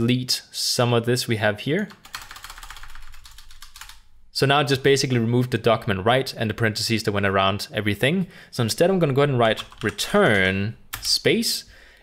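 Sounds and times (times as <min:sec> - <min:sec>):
keyboard keys clicking: 0:01.9 - 0:04.0, 0:09.5 - 0:11.1.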